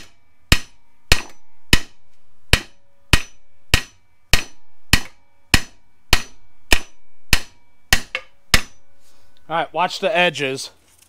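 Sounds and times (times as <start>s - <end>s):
hammer striking metal: 0.0s - 9.0s.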